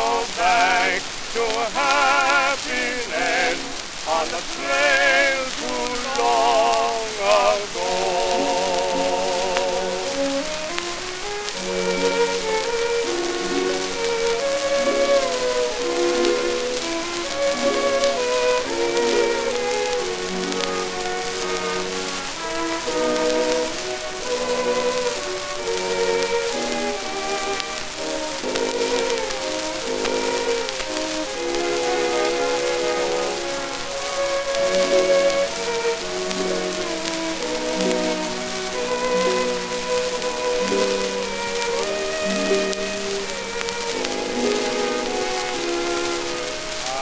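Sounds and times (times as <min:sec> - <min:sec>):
disc surface hiss and crackle: 0:00.0 - 0:47.0
orchestral melody: 0:00.0 - 0:47.0.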